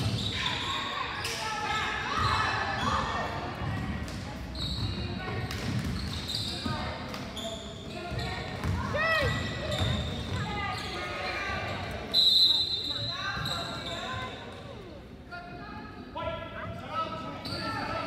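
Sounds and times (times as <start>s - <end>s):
sneakers squeaking: 0.0s - 14.8s, 17.2s - 18.0s
referee's whistle: 12.1s - 14.0s.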